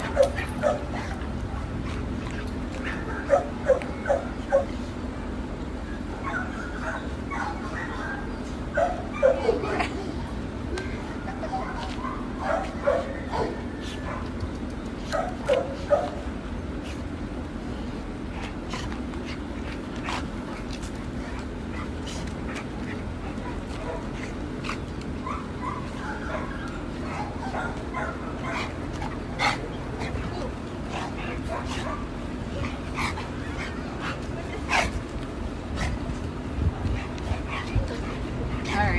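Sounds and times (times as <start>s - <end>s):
dog play barks: 0.0s - 4.8s, 10.9s - 16.4s, 18.4s - 38.9s.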